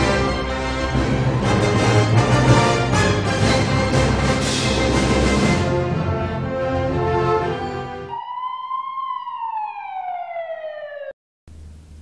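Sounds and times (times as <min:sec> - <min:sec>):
background music: 0:00.0 - 0:08.2
ambulance siren wail: 0:06.9 - 0:11.2.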